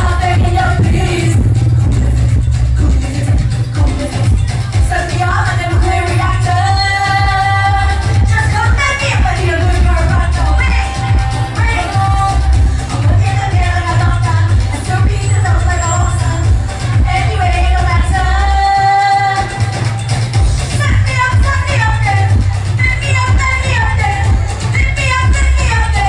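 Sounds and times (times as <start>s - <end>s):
woman singing through pa: 0.0s - 19.7s, 20.7s - 26.0s
amplified music with bass beat: 0.0s - 26.0s.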